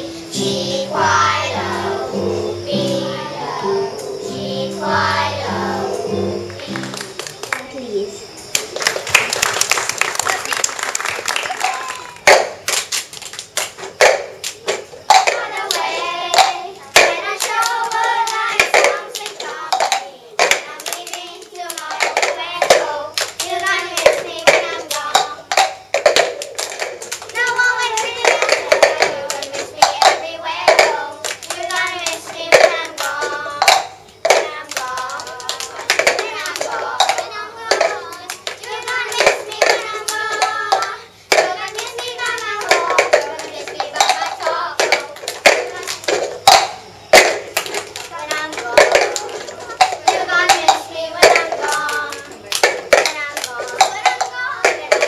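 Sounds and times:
children singing: 0.0s - 7.4s, 14.6s - 55.0s
hands clapping: 6.5s - 7.8s, 8.5s - 55.0s
plastic cups tapping floor: 11.2s - 21.0s, 21.6s - 55.0s.

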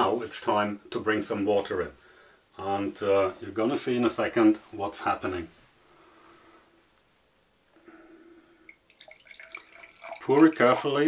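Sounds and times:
water pouring into a glass: 8.6s - 10.8s.

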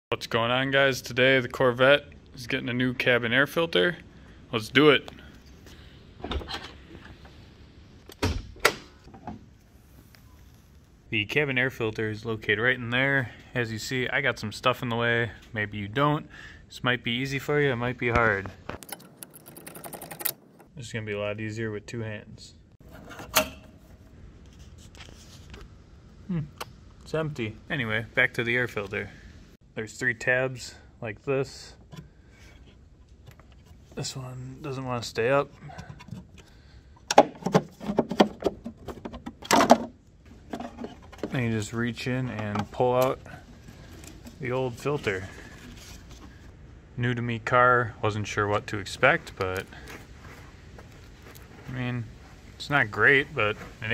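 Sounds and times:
handling sounds: 18.0s - 20.8s, 49.0s - 53.9s.

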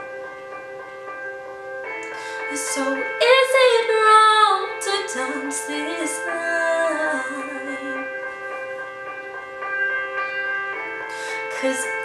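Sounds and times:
pop ballad backing music: 0.0s - 12.0s.

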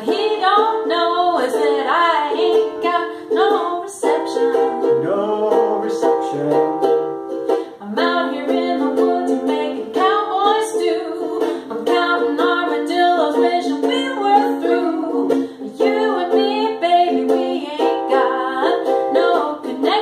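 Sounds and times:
woman and man singing: 0.0s - 6.7s, 7.7s - 20.0s
ukulele strumming: 0.0s - 20.0s
acoustic guitar strumming: 2.4s - 10.6s.

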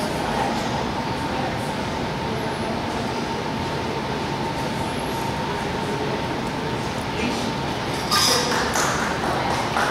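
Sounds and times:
steady background noise: 0.0s - 9.9s.

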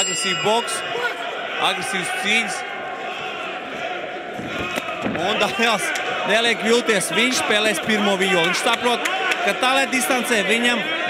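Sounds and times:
crowd din: 0.0s - 11.0s.

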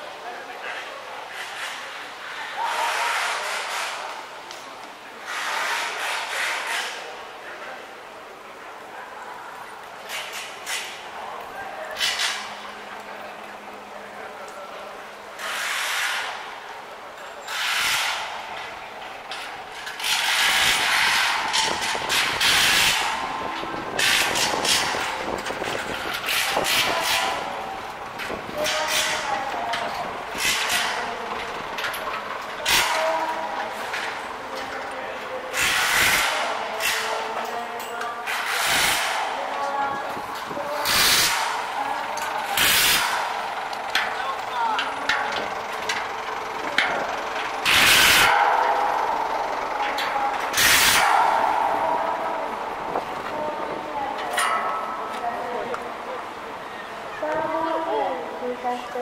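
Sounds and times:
indistinct voices of passers-by: 0.0s - 59.0s
traffic: 0.0s - 59.0s.

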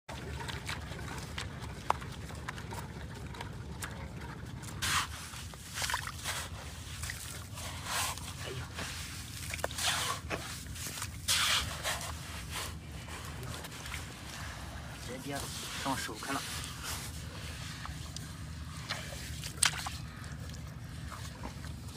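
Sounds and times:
low steady rumble: 0.1s - 21.9s
spade scraping into wet sand: 11.2s - 12.2s.

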